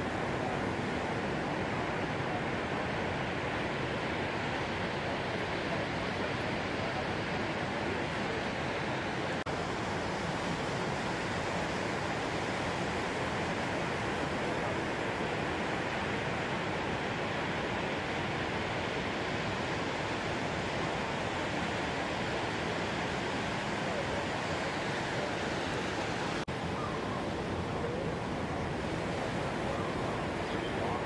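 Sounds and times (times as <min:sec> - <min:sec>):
ocean surf roar: 0:00.0 - 0:31.0.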